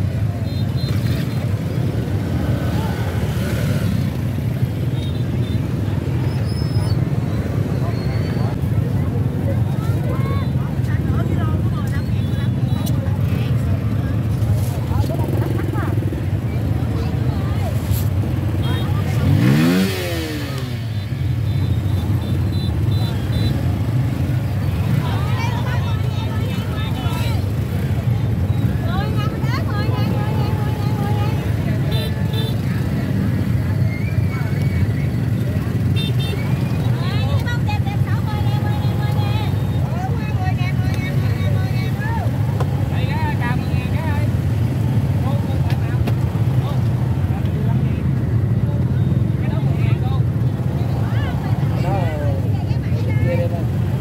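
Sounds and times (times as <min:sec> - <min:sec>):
people talking: 0:07.5 - 0:20.8, 0:24.4 - 0:44.4, 0:45.2 - 0:54.0
motor scooter engine running: 0:18.8 - 0:20.9.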